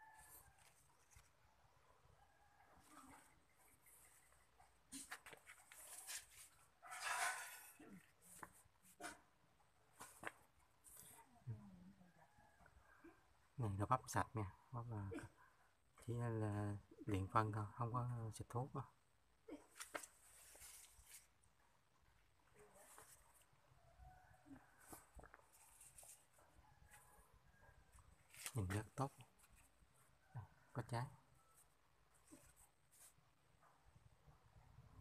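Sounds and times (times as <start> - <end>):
soft rustling: 0.2 - 1.5, 2.7 - 9.1, 19.7 - 23.7, 24.5 - 27.3, 27.9 - 29.9, 31.5 - 33.7.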